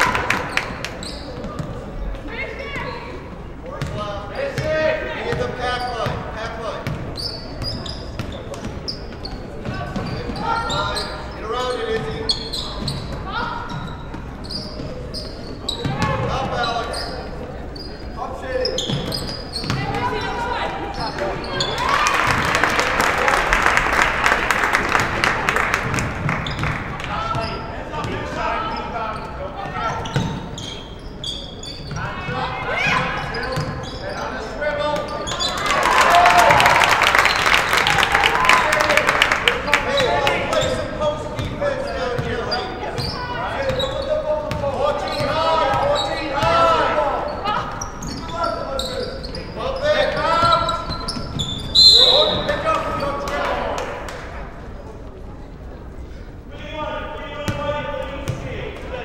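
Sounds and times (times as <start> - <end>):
crowd cheering and clapping: 0.0 - 1.0, 21.7 - 27.0, 35.5 - 40.4.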